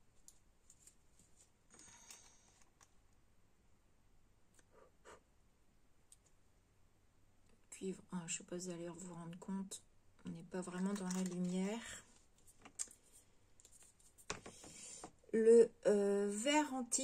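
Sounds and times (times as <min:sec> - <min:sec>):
soft rustle: 0:00.0 - 0:02.9, 0:10.8 - 0:15.1
woman speaking: 0:07.7 - 0:12.1, 0:15.4 - 0:17.0
plastic paint pots clicking: 0:10.9 - 0:11.6.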